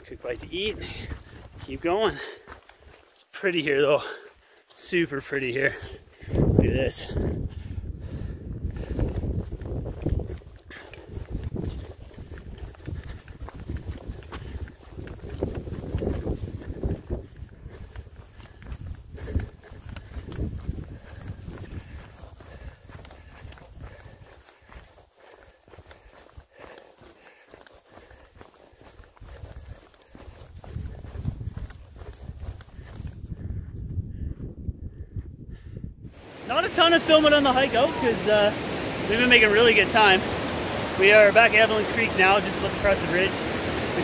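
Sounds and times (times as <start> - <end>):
footsteps on gravel trail: 0.0 - 34.4, 36.1 - 44.0.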